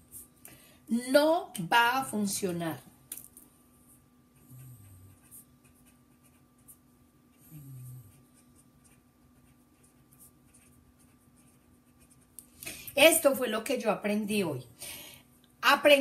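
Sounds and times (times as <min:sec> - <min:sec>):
faint steady hum: 0:00.0 - 0:16.0
pen scratching while writing: 0:08.1 - 0:12.3.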